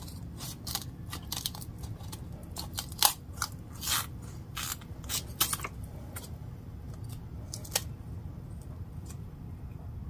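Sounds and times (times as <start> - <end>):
crunching and snipping food: 0.0 - 9.3
low steady hum: 0.0 - 10.0.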